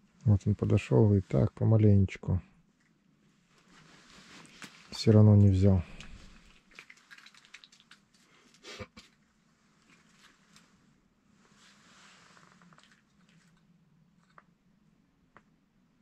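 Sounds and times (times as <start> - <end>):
faint rustles: 2.7 - 14.5.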